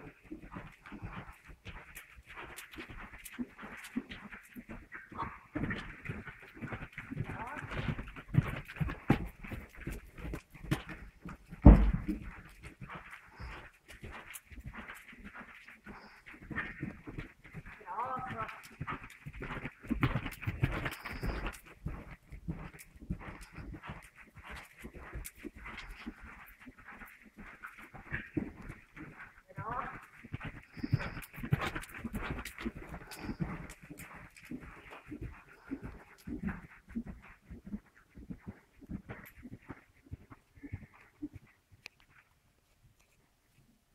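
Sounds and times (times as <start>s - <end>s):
horse hoofbeats on soft footing: 0.0s - 43.9s.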